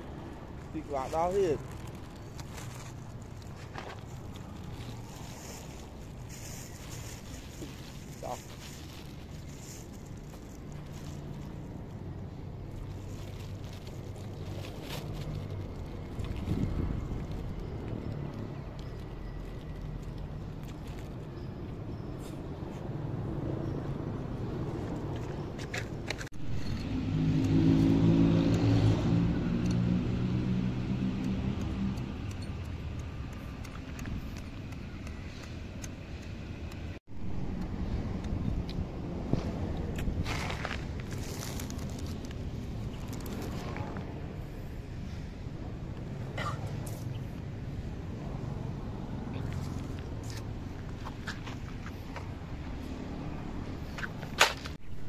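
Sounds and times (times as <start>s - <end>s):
plastic bag crinkling: 1.2s - 11.7s
wind buffeting microphone: 16.0s - 17.7s.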